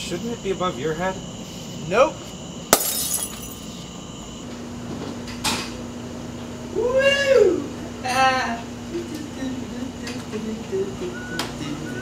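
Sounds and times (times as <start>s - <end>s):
glass light bulb shattering: 2.7s - 3.6s
person crying out: 6.8s - 7.6s.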